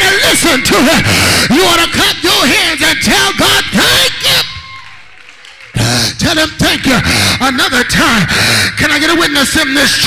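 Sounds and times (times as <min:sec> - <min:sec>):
man preaching into microphone: 0:00.0 - 0:04.6, 0:05.8 - 0:10.0.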